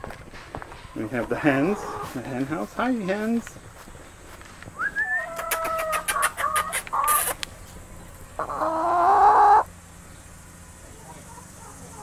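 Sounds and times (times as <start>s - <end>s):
hens clucking: 0.0s - 12.0s
hen call rising in pitch: 4.8s - 7.4s, 8.4s - 9.7s.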